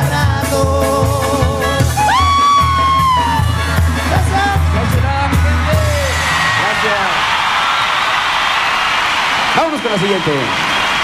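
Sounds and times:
crowd cheering and applauding: 0:01.9 - 0:11.0.

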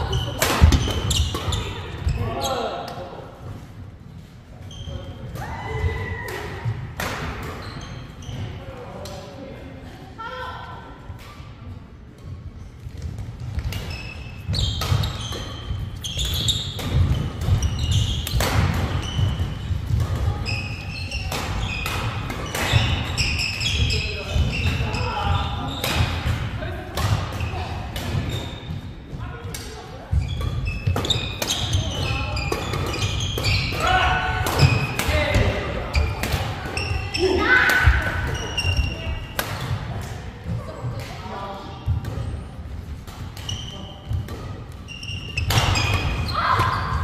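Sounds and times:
shoes squeaking on wooden floor: 0:00.0 - 0:02.5, 0:13.8 - 0:26.0, 0:30.1 - 0:34.0, 0:43.4 - 0:47.0
racket hitting shuttlecock: 0:00.1 - 0:02.0, 0:13.5 - 0:15.6, 0:16.2 - 0:20.3, 0:30.4 - 0:36.8, 0:37.6 - 0:40.3, 0:43.0 - 0:47.0.

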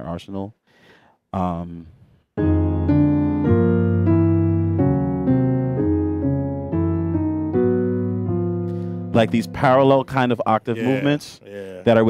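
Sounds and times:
keyboard playing sustained chords: 0:02.4 - 0:10.0.

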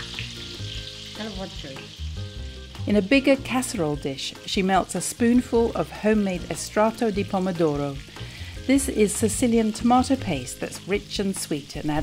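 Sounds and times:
food sizzling in a frying pan: 0:00.0 - 0:12.0.

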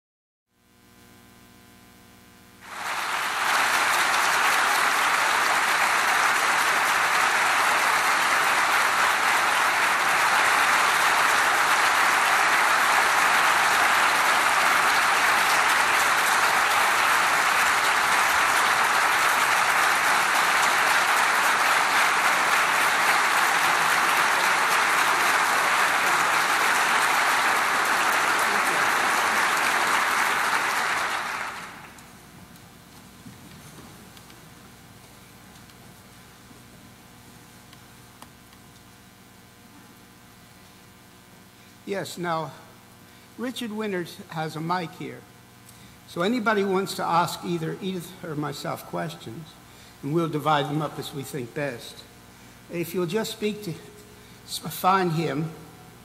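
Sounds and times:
audience applauding: 0:02.6 - 0:32.2.

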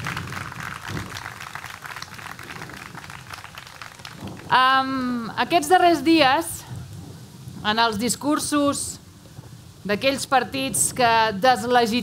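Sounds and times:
audience clapping: 0:00.0 - 0:04.6.

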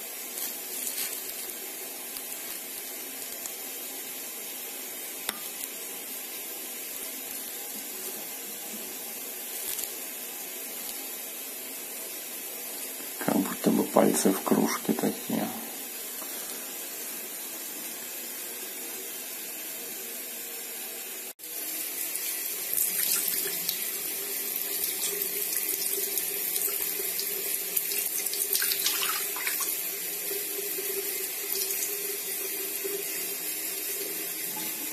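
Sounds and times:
tap water running into sink: 0:21.8 - 0:34.9
splashing as mug is rinsed: 0:22.7 - 0:23.9, 0:24.6 - 0:29.8, 0:31.4 - 0:32.0.

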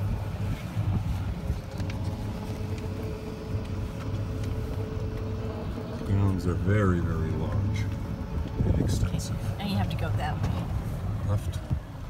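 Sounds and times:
golf cart rumbling: 0:00.0 - 0:12.0.

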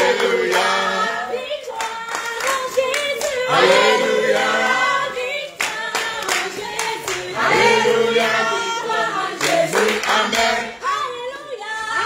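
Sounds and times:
group singing unaccompanied: 0:00.0 - 0:12.0
hand claps: 0:01.3 - 0:04.5, 0:05.5 - 0:07.4, 0:09.4 - 0:10.6.

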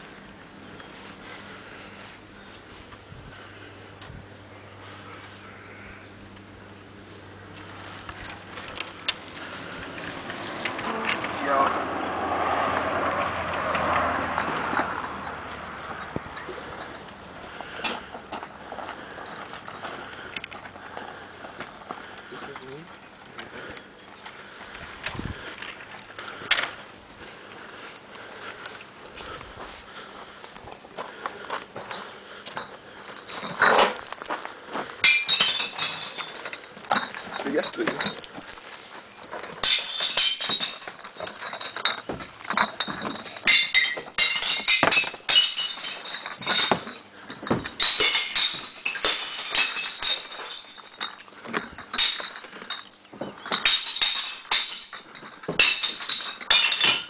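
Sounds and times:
footsteps crunching on gravel: 0:00.0 - 0:03.1, 0:14.6 - 0:35.1, 0:36.0 - 0:39.6
wheelbarrow being set down: 0:31.8 - 0:38.5, 0:39.3 - 0:57.0
cans clattering in wheelbarrow: 0:31.8 - 0:57.0
glass bottles clinking and breaking: 0:31.8 - 0:57.0.

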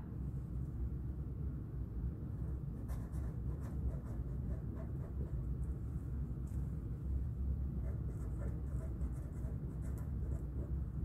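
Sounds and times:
steady low hum: 0:00.0 - 0:11.0
marker scratching on paper: 0:02.8 - 0:05.5, 0:07.8 - 0:10.8.

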